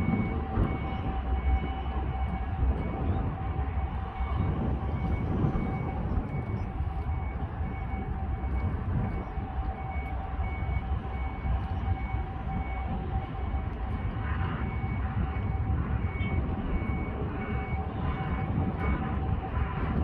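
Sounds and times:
low rumble: 0.0 - 20.0
reversing alarm beeping: 0.0 - 20.0.

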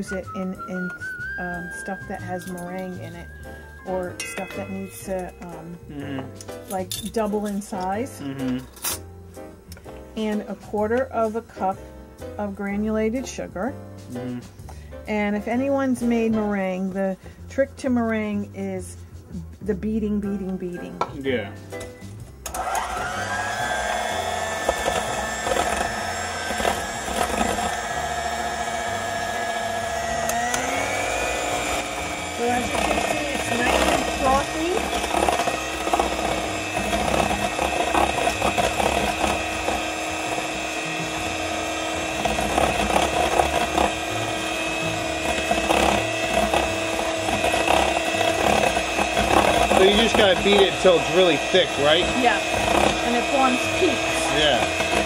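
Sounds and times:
electric hand mixer whine: 0.0 - 6.4, 22.4 - 55.0.

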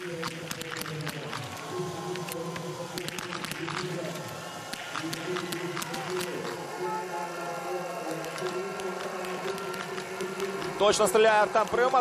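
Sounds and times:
stadium music with held tones: 0.0 - 12.0.

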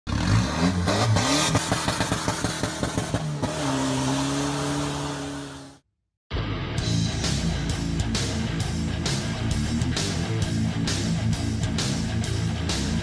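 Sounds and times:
racing engine revving: 0.1 - 5.8.

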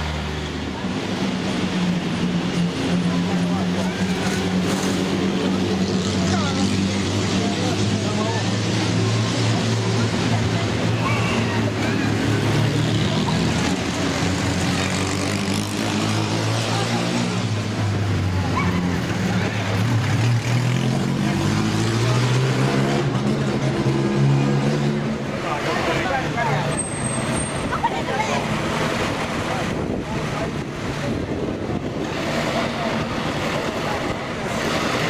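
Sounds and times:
crowd chattering: 0.0 - 35.0.

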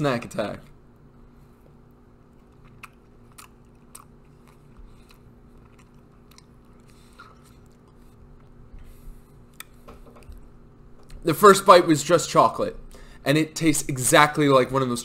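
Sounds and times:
chewing frozen ice pop: 2.2 - 8.6.

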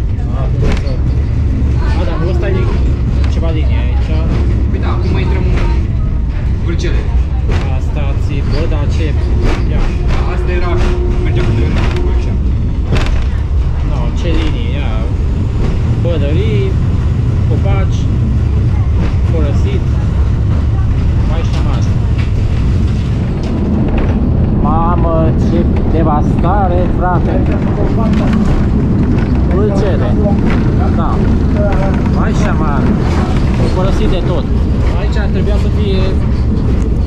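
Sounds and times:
passenger voices: 0.0 - 37.0
railcar running rumble: 0.0 - 37.0
wheels knocking on track: 2.6 - 37.0.

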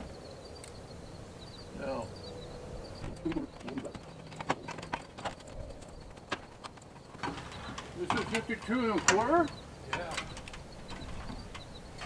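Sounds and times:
aluminium ladder knocks and clanks: 6.1 - 12.0.

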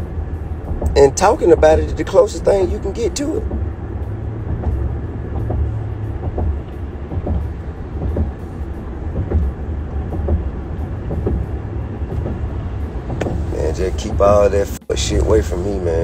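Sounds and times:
faint ticks and knocks: 0.0 - 15.6
car road rumble: 0.0 - 16.0.

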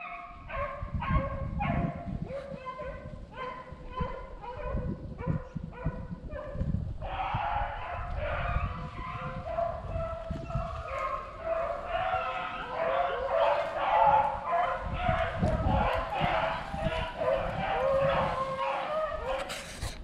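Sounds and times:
dog yelping: 0.0 - 6.5, 7.1 - 19.7
beagles baying: 7.0 - 19.8.

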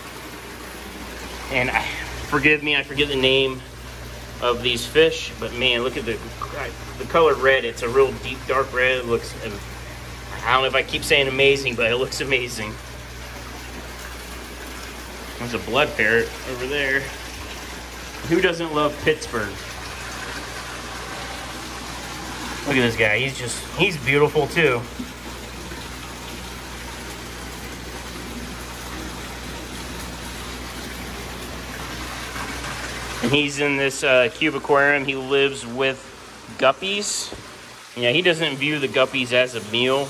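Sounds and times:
air bubbles: 0.0 - 33.5
aquarium water rushing: 0.0 - 40.0.

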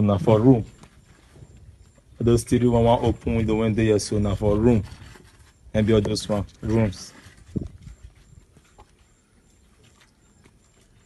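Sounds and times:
faint high-pitched chirp: 0.0 - 11.0
faint footsteps: 0.5 - 3.3, 4.8 - 11.0.

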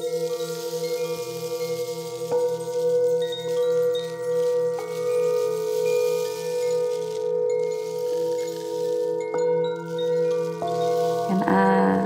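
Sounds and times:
high chime-like notes: 0.0 - 12.0.

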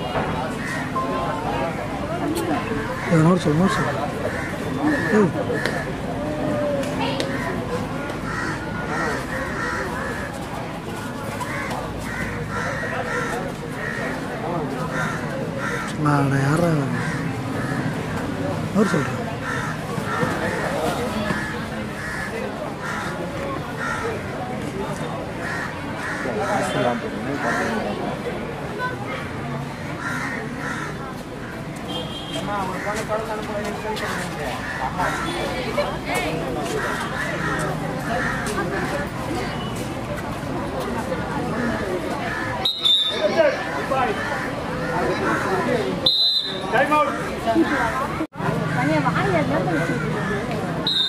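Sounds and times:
voices: 0.0 - 51.0
crows cawing: 0.5 - 1.0, 3.0 - 6.0, 7.2 - 10.4, 11.4 - 14.2, 14.8 - 16.3, 16.9 - 18.1, 18.8 - 24.3, 25.4 - 26.8, 30.0 - 31.0, 34.6 - 35.4, 36.7 - 38.6, 44.1 - 45.8.

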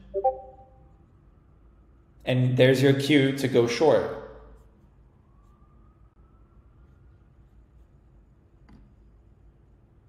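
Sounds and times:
faint tone rising in pitch: 0.0 - 1.0.

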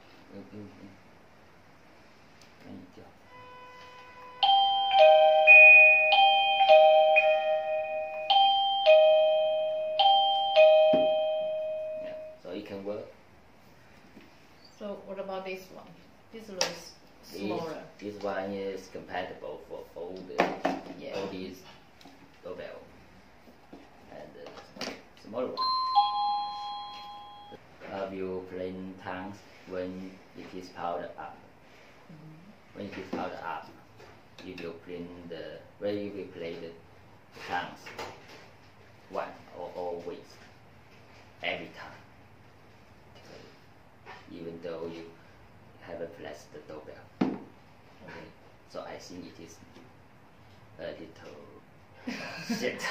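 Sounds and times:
electronic doorbell chime melody: 4.4 - 12.4, 25.6 - 27.6.

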